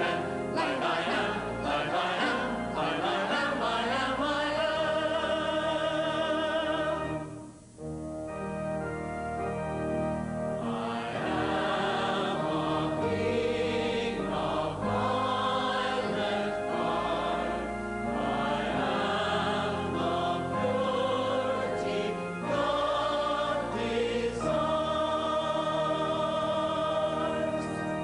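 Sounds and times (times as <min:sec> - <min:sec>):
choir singing a hymn: 0:00.0 - 0:07.4, 0:10.4 - 0:28.0
organ chords: 0:00.0 - 0:28.0.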